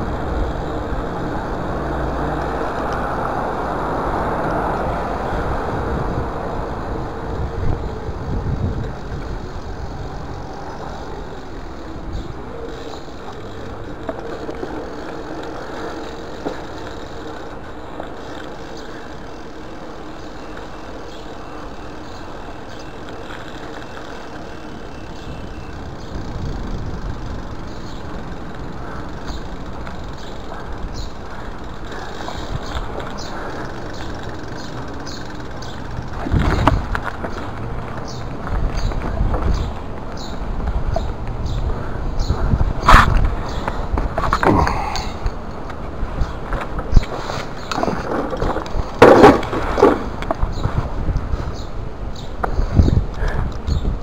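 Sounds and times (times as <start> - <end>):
bike clicks and rattles: 0.0 - 54.0
bike tyres rolling: 0.0 - 54.0.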